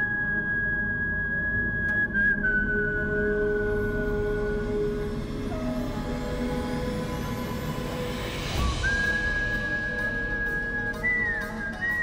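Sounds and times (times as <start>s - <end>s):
dramatic sustained score: 0.1s - 12.0s.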